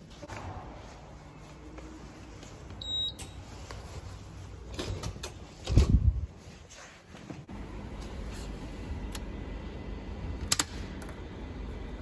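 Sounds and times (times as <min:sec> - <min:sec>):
card reader beep: 0:02.8 - 0:03.4.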